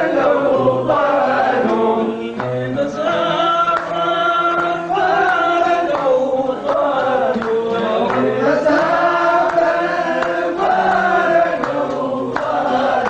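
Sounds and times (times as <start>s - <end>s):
man singing: 0.0s - 12.9s.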